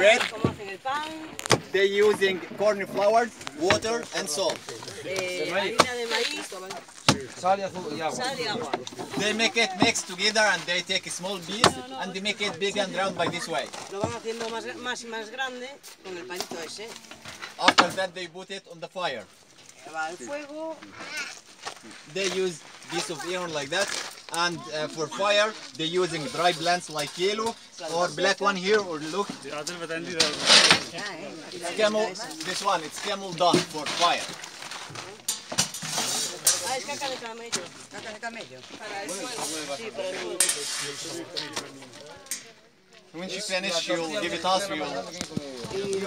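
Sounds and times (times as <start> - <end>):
background voices: 0.0 - 14.8, 28.9 - 46.0
people talking: 0.0 - 16.9, 17.6 - 18.4, 21.9 - 34.3, 35.8 - 46.0.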